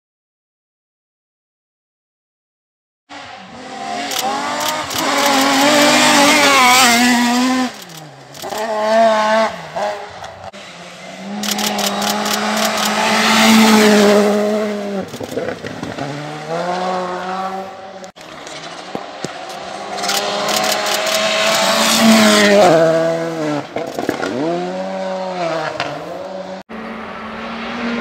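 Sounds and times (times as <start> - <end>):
rally car engine revving: 3.1 - 28.0.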